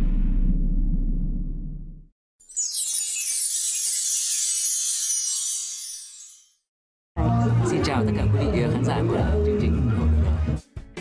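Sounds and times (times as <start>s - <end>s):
sparkly hissing downward glide: 2.5s - 6.6s.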